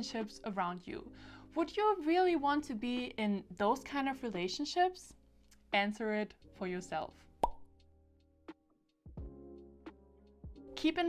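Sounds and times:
soft background music: 0:00.0 - 0:11.0
pop sound effect with ringing: 0:07.4 - 0:07.7.

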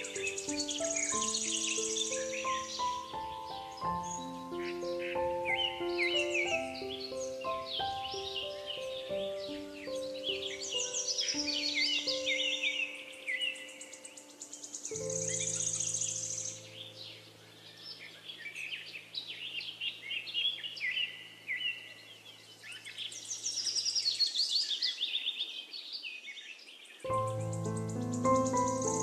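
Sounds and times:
slow solo piano: 0:00.0 - 0:18.2, 0:27.0 - 0:29.0
songbirds chirping and trilling: 0:00.0 - 0:29.0.

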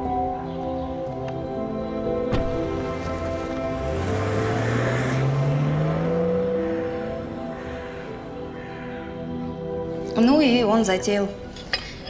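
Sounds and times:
background music: 0:00.0 - 0:12.0
car engine revving: 0:02.4 - 0:08.8.

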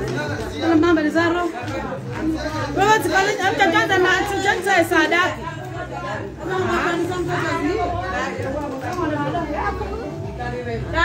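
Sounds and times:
women talking and calling out: 0:00.5 - 0:01.7, 0:02.8 - 0:08.4.

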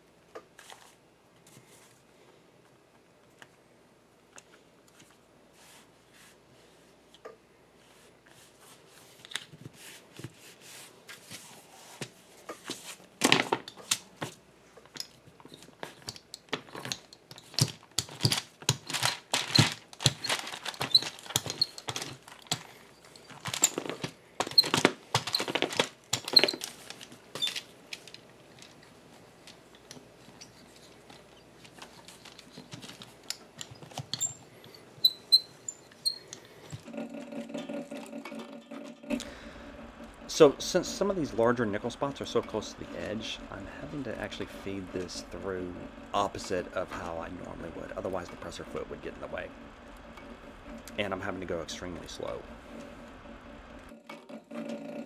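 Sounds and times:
low hum: 0:36.8 - 0:54.1.

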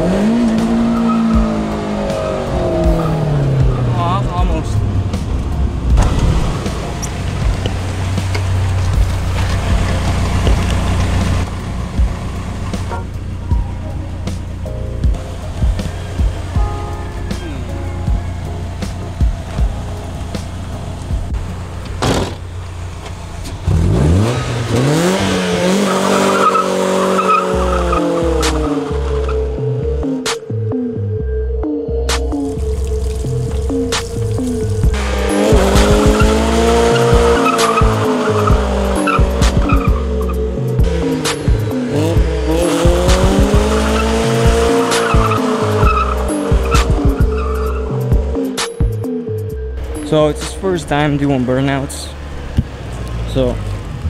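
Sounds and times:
music with steady beat: 0:00.0 - 0:09.1, 0:11.3 - 0:21.6, 0:27.8 - 0:50.7
car engine revving: 0:00.0 - 0:54.0
tyres squealing: 0:25.6 - 0:29.5, 0:33.3 - 0:41.6, 0:42.4 - 0:48.2.

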